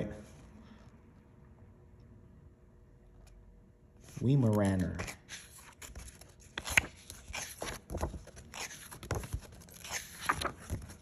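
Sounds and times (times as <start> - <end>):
book pages rustling: 4.1 - 11.0.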